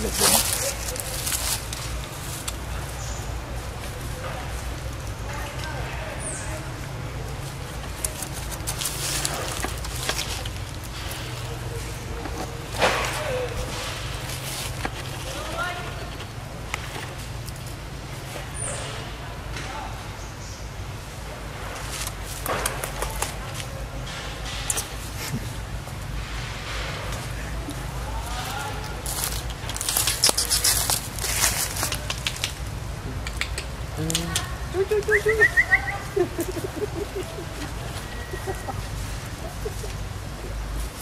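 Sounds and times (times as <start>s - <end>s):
dry leaves crackling: 0.0s - 18.9s, 21.0s - 33.0s, 33.8s - 41.0s.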